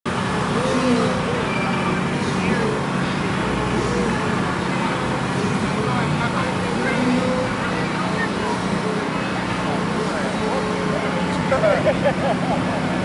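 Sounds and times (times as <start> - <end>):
cars idling: 0.1 - 13.0
people talking: 0.3 - 13.0.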